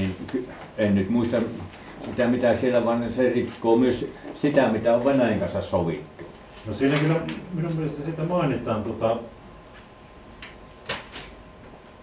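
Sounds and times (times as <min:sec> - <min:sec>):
man speaking: 0:00.0 - 0:09.4
paper sheets rustling: 0:06.6 - 0:07.3, 0:10.9 - 0:11.4.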